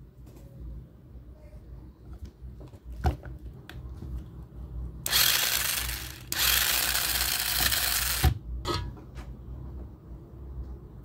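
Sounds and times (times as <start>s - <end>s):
small motors whirring: 5.1s - 8.4s.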